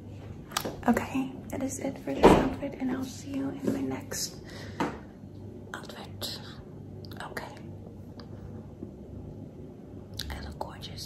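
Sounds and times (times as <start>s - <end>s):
low steady room hum: 0.0s - 11.0s.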